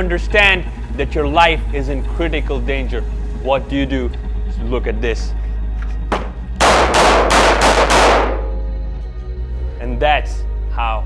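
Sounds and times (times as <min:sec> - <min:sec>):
pistol shots echoing indoors: 0:06.1 - 0:08.7.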